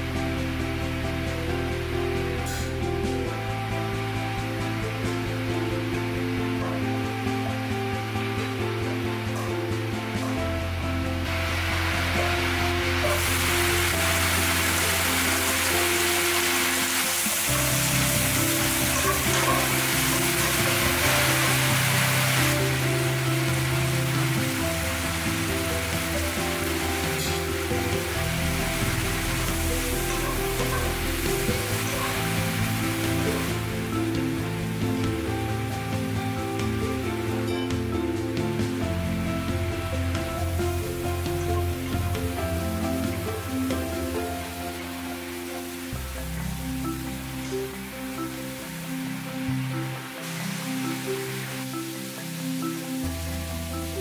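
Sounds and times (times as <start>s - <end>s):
background music: 0.0s - 54.0s
vegetables sizzling in hot oil: 8.4s - 54.0s.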